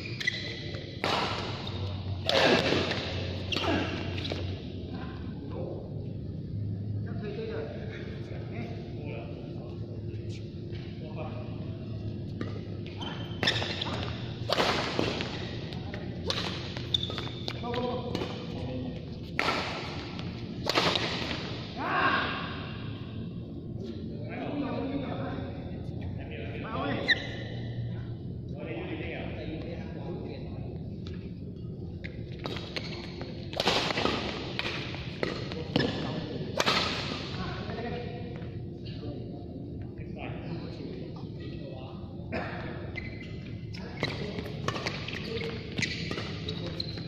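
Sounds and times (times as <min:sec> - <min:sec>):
steady low hum: 0:00.0 - 0:47.0
rackets hitting shuttlecock: 0:00.7 - 0:04.5, 0:13.4 - 0:18.5, 0:19.4 - 0:21.6, 0:32.4 - 0:37.4
rackets smacking shuttlecock: 0:13.4 - 0:15.6, 0:16.2 - 0:18.4, 0:19.4 - 0:21.6, 0:36.6 - 0:37.2.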